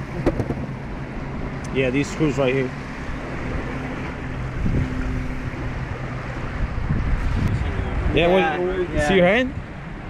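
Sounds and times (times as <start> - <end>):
lake water: 0.0 - 10.0
wind: 0.0 - 10.0.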